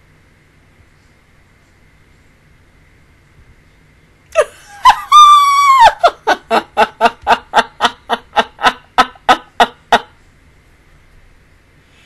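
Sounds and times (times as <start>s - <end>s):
woman laughing: 4.4s - 10.2s.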